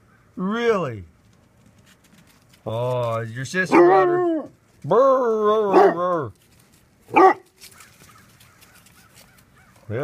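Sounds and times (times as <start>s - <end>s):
dog barking: 3.7s - 4.2s, 5.7s - 6.0s, 7.1s - 7.5s.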